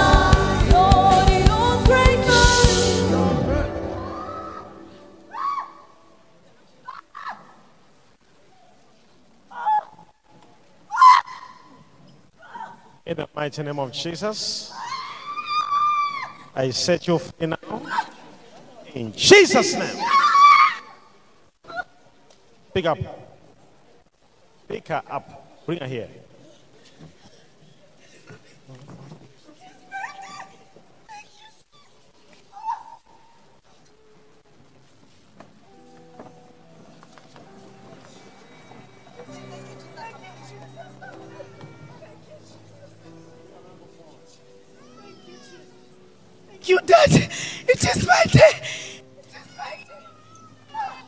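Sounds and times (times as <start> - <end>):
woman shrieking: 4.0 - 5.8, 10.9 - 11.7, 14.7 - 16.5, 19.5 - 21.0, 32.5 - 33.0, 46.6 - 50.0
woman's high wailing cry: 4.0 - 5.8, 46.6 - 49.0.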